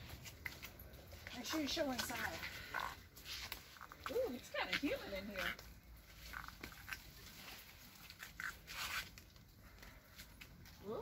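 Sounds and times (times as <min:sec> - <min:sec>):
footsteps scuffing on stone: 0:00.0 - 0:09.3.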